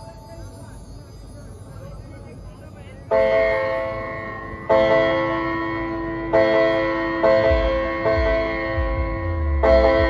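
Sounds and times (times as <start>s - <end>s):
bell-like instrumental melody: 0.0s - 10.0s.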